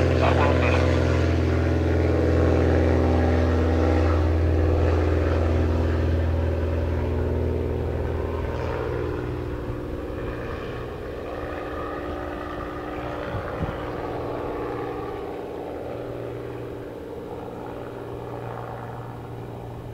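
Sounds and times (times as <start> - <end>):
propeller aircraft engines droning: 0.0 - 19.9.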